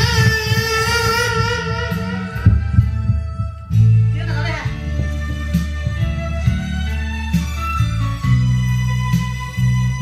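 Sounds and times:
karaoke backing music: 0:00.0 - 0:10.0.

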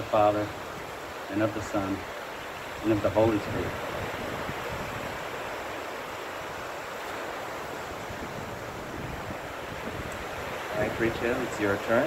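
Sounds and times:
ocean surf: 0:00.0 - 0:12.0
wind on microphone: 0:00.0 - 0:12.0.

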